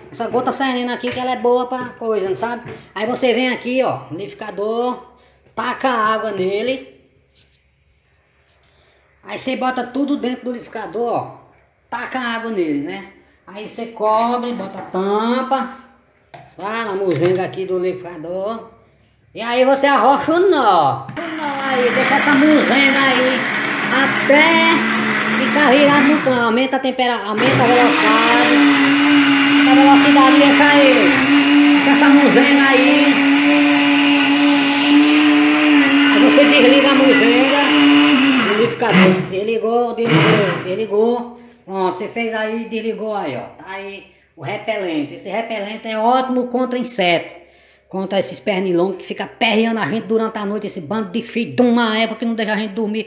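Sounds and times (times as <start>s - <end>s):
blender motor whine: 21.2s - 26.6s, 27.4s - 40.9s.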